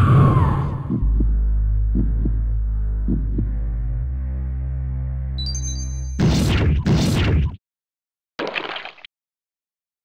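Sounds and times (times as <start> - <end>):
low drone: 0.0 - 5.4
heartbeat-like double thuds: 0.3 - 3.8.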